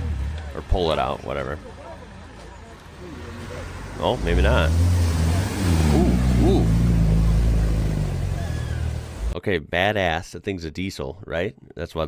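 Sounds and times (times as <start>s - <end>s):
diesel engine running hard: 0.0s - 2.4s, 3.9s - 9.4s
water rushing and splashing: 2.9s - 9.4s.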